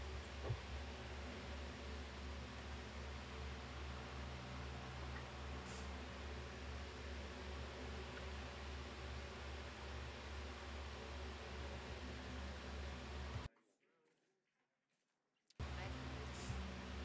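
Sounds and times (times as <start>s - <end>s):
low electrical hum with hiss: 0.0s - 13.5s, 15.6s - 17.0s.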